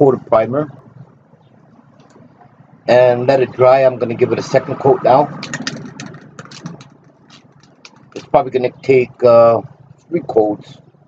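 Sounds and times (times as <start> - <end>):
aerosol can mixing ball rattling: 5.4 - 8.2.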